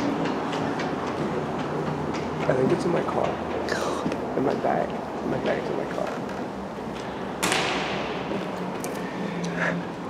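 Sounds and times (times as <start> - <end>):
sharp crack with echo: 7.4 - 8.4.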